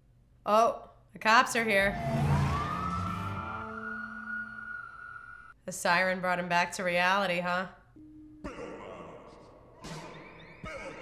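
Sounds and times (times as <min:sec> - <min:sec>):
sustained music notes: 0:01.8 - 0:04.7
police siren wail: 0:01.8 - 0:05.4.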